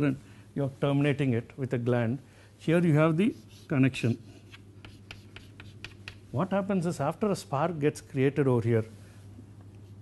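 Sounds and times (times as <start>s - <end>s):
chalk strokes on a chalkboard: 3.0s - 6.2s.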